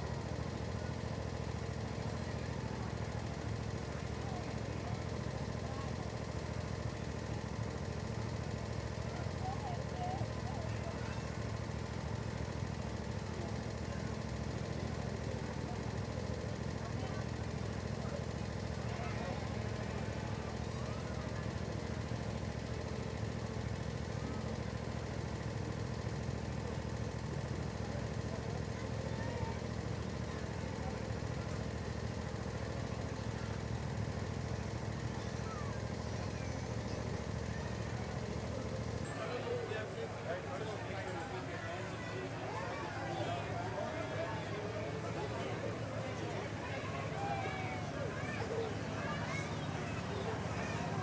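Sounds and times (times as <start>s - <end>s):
miniature train engine idling: 0.0s - 51.0s
murmur of voices: 0.0s - 51.0s.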